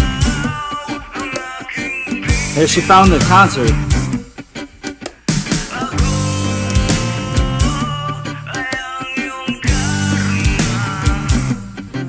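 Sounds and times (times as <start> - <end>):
rock band playing: 0.0 - 1.2, 2.0 - 12.0.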